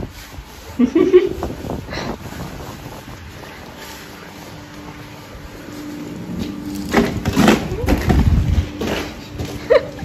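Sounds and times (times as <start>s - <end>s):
wind buffeting microphone: 0.0s - 6.4s, 7.1s - 10.0s.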